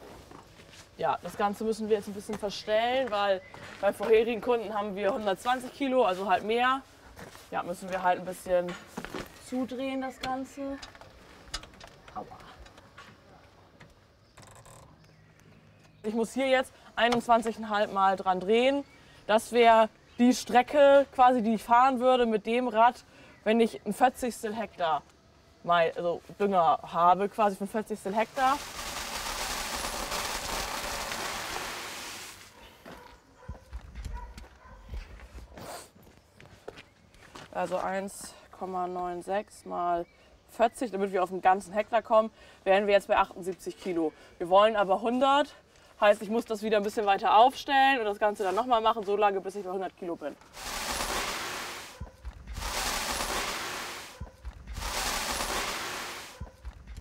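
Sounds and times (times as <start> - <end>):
granules trickling hiss: 28.1 - 32.6, 50.4 - 57.0.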